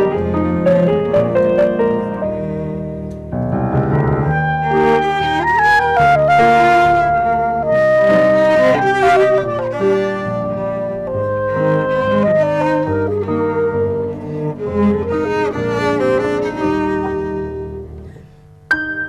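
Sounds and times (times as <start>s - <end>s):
cello: 0.0s - 18.5s
clarinet: 0.0s - 19.0s
piano chords: 0.0s - 19.0s.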